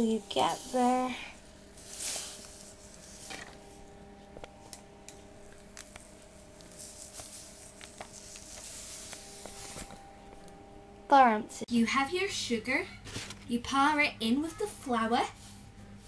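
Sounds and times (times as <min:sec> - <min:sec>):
sugar granules pouring: 0:00.0 - 0:03.6.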